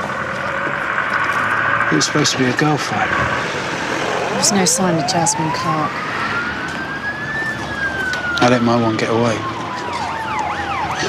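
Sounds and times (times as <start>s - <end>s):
emergency siren wailing: 0.0s - 11.0s.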